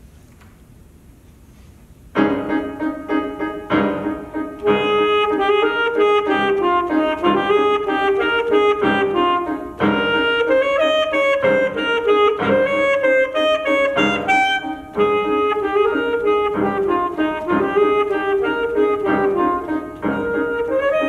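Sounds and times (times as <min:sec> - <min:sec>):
saxophone solo melody: 0:02.2 - 0:21.0.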